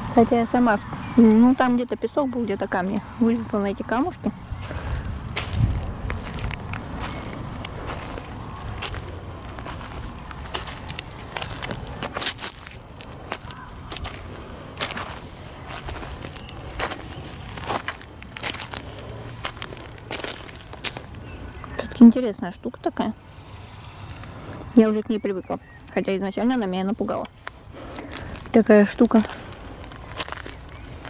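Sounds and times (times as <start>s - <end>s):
footsteps crunching on pebbles: 0.8s - 22.0s, 26.6s - 31.0s.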